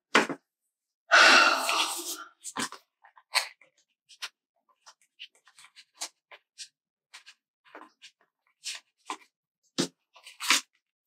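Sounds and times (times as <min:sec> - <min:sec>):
person exhaling breathily: 0:01.1 - 0:02.2.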